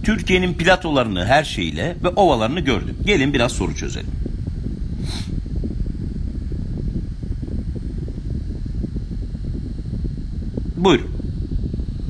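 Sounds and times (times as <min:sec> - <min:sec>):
low background rumble: 0:00.0 - 0:12.0
short hiss: 0:05.0 - 0:05.4.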